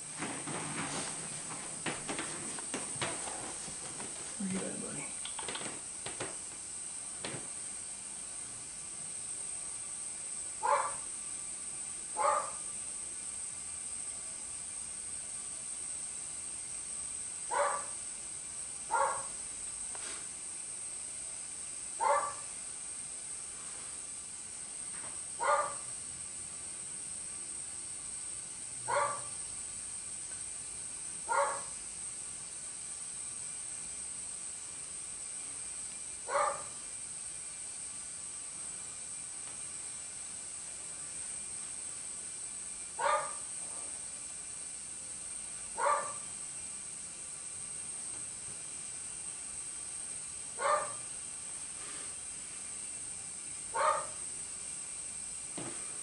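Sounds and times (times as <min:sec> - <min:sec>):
dog barking: 0:10.6 - 0:11.0, 0:12.2 - 0:12.6, 0:17.5 - 0:17.9, 0:18.9 - 0:19.3, 0:22.0 - 0:22.5, 0:25.4 - 0:25.9, 0:28.9 - 0:29.3, 0:31.3 - 0:31.7, 0:36.3 - 0:36.8, 0:43.0 - 0:43.4, 0:45.8 - 0:46.2, 0:50.6 - 0:51.0, 0:53.8 - 0:54.2.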